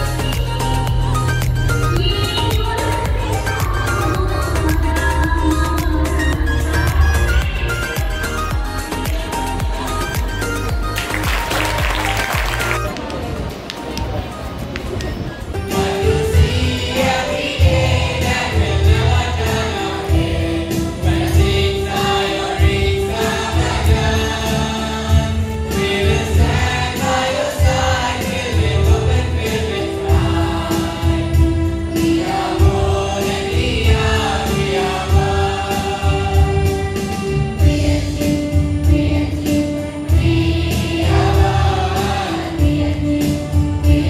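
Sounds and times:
children's choir singing: 0:15.5 - 0:44.0.

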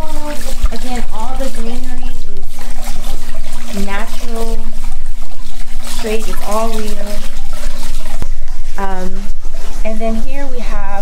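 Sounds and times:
person's voice: 0:00.0 - 0:02.2, 0:03.7 - 0:04.7, 0:06.0 - 0:07.2, 0:08.8 - 0:11.0
fountain water trickling: 0:00.0 - 0:11.0
steady low hum: 0:00.0 - 0:11.0.

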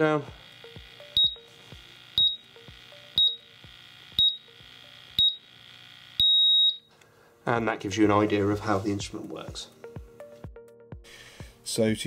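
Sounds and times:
long beep: 0:01.0 - 0:01.6, 0:02.2 - 0:05.6, 0:06.2 - 0:06.9
short high beeps: 0:01.2 - 0:01.5, 0:02.2 - 0:02.6, 0:03.2 - 0:03.6, 0:04.2 - 0:04.6, 0:05.2 - 0:05.5, 0:06.2 - 0:06.9.

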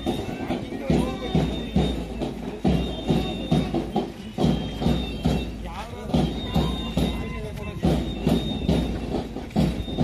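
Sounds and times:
low march drum thumps: 0:00.0 - 0:10.0.

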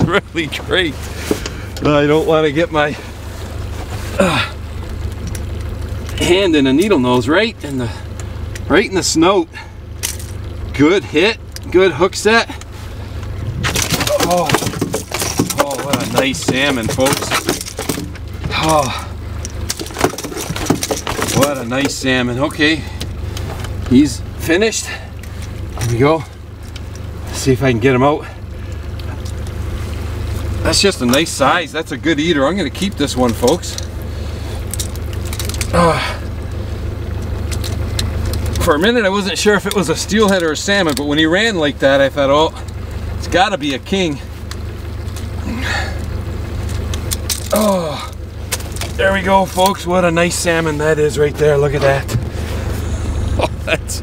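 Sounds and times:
outboard motor humming: 0:00.0 - 0:54.0.

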